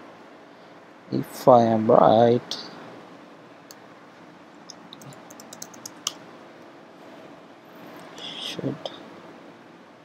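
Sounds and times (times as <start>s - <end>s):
computer keyboard typing: 4.7s - 6.2s.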